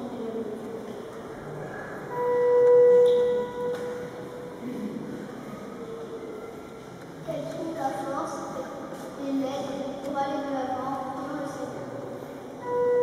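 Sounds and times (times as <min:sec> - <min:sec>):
steady musical note: 0:02.1 - 0:04.7, 0:12.6 - 0:13.0.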